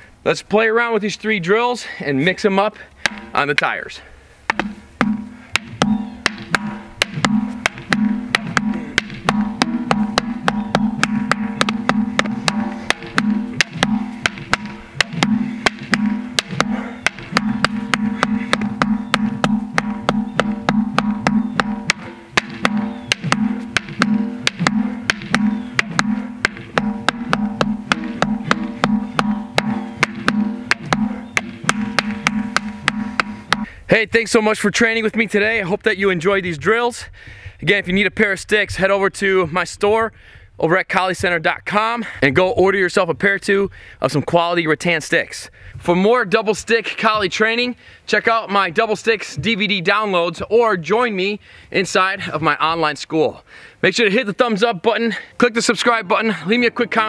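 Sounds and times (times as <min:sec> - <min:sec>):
sticks striking rubber tyres: 0:03.0 - 0:03.7, 0:04.5 - 0:33.8.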